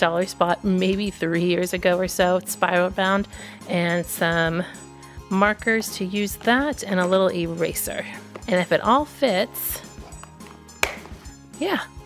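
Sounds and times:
plastic case lid clicking shut: 10.1 - 11.2.

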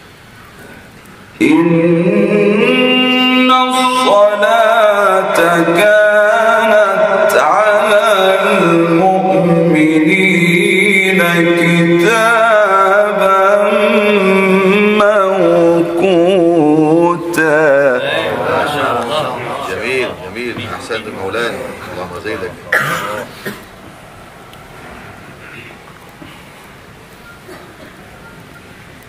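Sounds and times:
man reciting melodic chant: 1.4 - 23.3
man's voice: 1.4 - 23.3
throat clearing: 22.7 - 23.7, 25.4 - 26.6, 27.4 - 28.0
loud harsh cough: 22.7 - 23.8, 27.5 - 28.0.

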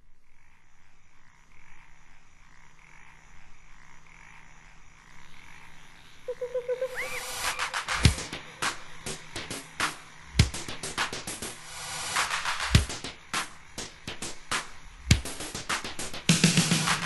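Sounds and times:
frogs croaking: 0.0 - 16.9
pulsing synth tone: 6.2 - 9.1
rising synth glide: 6.3 - 8.3
electronic drum hits: 7.4 - 11.2.

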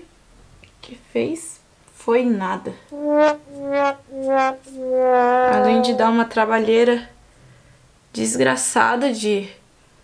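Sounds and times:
sad trombone notes: 2.9 - 7.2.

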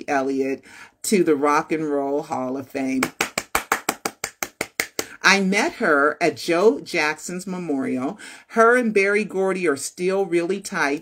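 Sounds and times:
woman clapping hands: 3.0 - 5.2.

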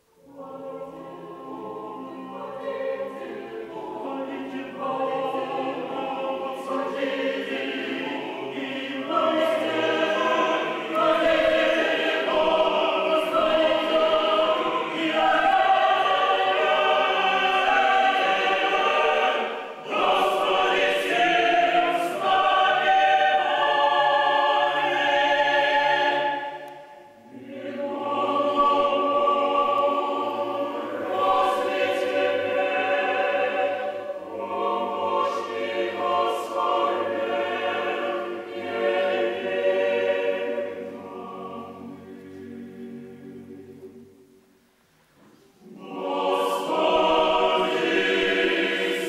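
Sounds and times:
choir chanting a cappella: 0.0 - 44.3, 45.5 - 49.0.

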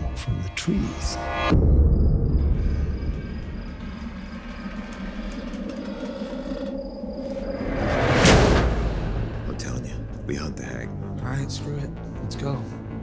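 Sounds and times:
sustained eerie tone: 0.0 - 11.1
deep low rumble: 0.8 - 12.3.

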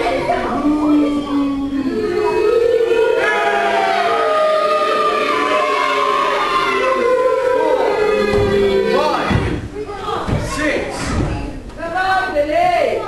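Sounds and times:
children yelling together: 0.0 - 10.6.

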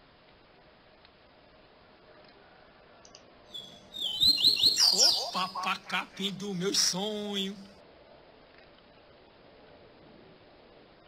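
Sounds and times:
bird singing high rising chirps: 3.5 - 5.7.

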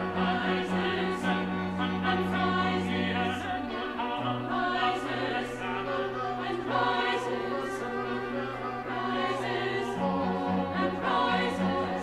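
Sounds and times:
chamber choir singing: 0.0 - 12.0
string quartet: 0.0 - 12.0.

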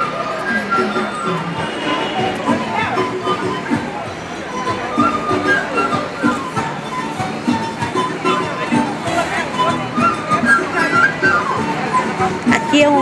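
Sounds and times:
crowd chatter: 0.0 - 13.0
folk group playing melody: 0.0 - 13.0.

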